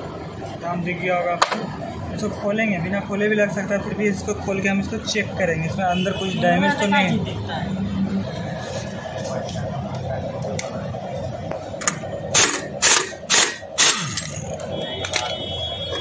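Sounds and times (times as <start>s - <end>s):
pneumatic impact wrench hammering: 11.8s - 15.2s.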